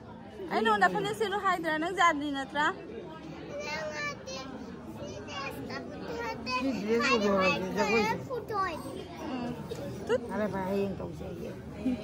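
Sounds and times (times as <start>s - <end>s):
children talking and calling: 0.0s - 12.0s
crowd chatter in a hall: 0.0s - 12.0s.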